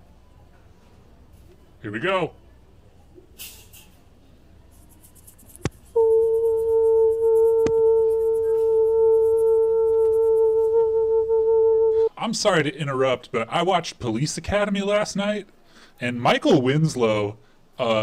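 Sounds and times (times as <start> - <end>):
woman singing steady tone: 5.9 - 12.1.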